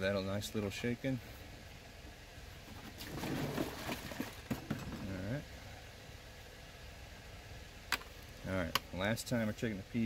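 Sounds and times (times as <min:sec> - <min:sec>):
water sloshing in plastic jug: 0:02.6 - 0:05.1.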